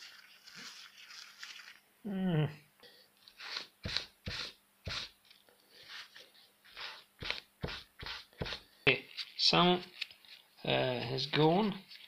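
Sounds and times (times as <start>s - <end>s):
tissue rubbing on rubber glove: 3.3s - 12.0s.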